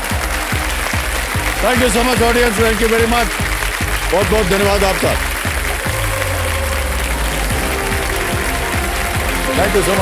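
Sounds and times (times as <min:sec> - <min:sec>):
audience applauding: 0:00.0 - 0:10.0
background music: 0:00.0 - 0:10.0.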